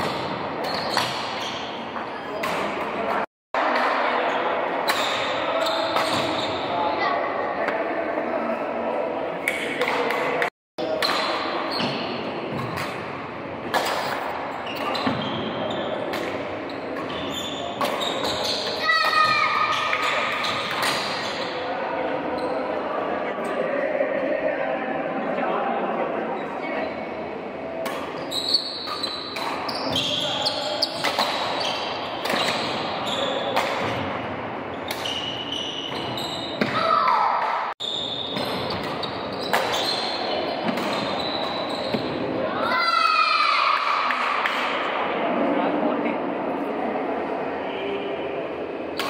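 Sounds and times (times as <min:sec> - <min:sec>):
sneakers squeaking on floor: 0:00.0 - 0:03.2, 0:04.9 - 0:07.1, 0:10.8 - 0:22.8, 0:27.9 - 0:37.0, 0:37.8 - 0:42.4
echoing sports hall ambience: 0:00.0 - 0:49.0
indistinct voices: 0:13.8 - 0:28.2.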